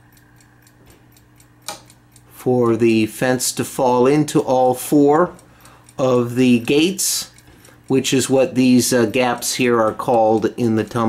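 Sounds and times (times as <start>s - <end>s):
fast clock ticking: 0.0s - 11.0s.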